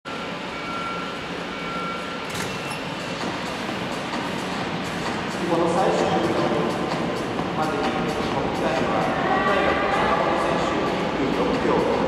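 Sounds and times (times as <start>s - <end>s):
faint electronic tone: 0.1s - 3.2s
indoor hall noise: 0.1s - 12.0s.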